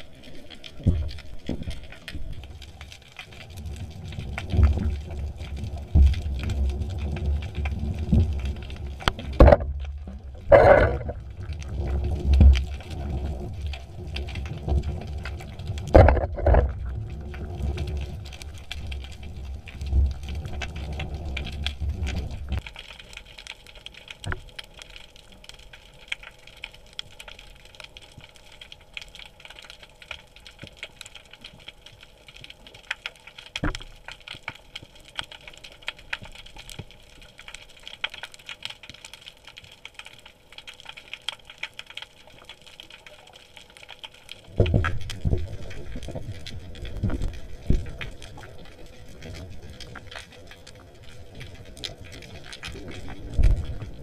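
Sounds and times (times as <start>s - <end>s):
low rumble of water underwater: 0.0s - 54.0s
knocks and thumps: 9.4s - 9.8s, 15.9s - 16.7s.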